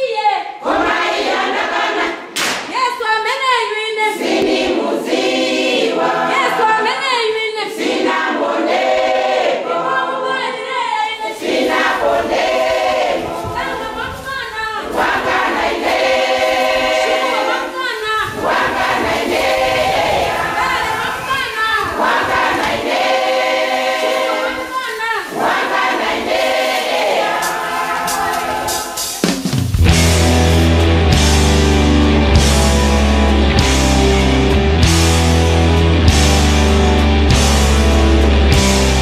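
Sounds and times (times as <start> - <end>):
choir singing in harmony: 0.2 - 2.4, 3.9 - 14.2, 14.8 - 34.8.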